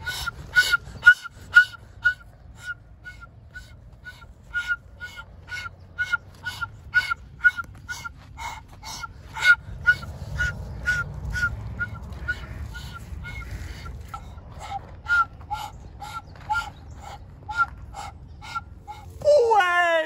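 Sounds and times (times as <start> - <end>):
low background rumble: 0.0 - 20.0.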